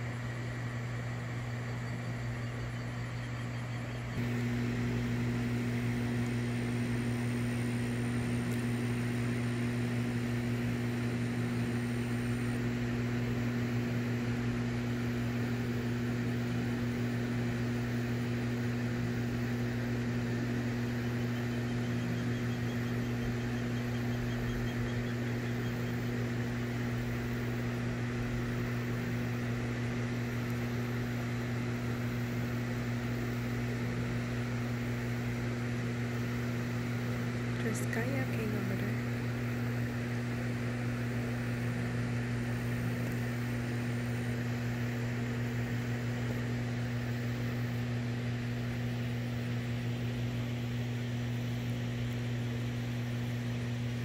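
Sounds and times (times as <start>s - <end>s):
deep electrical hum: 0.0s - 54.0s.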